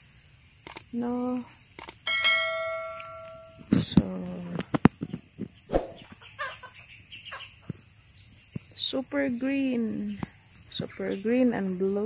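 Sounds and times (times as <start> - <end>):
sharp clicks: 0.6 - 0.9.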